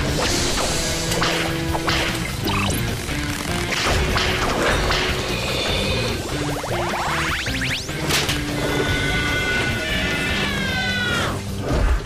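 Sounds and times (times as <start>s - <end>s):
cartoon music: 1.8s - 3.8s, 5.1s - 8.1s.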